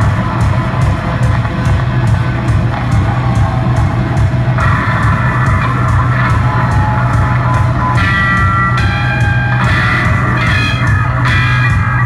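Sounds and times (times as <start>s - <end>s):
live punk rock band: 0.0s - 12.0s.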